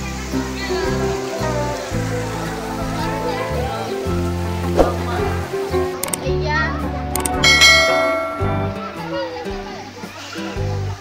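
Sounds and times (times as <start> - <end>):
background music: 0.0 - 11.0
quick clicks: 6.0 - 6.2, 7.2 - 7.4
bright bell chime: 7.2 - 9.3.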